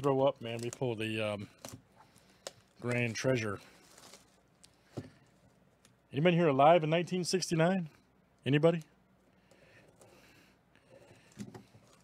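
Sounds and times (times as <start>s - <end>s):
shrink wrap crinkling: 0.0s - 6.0s.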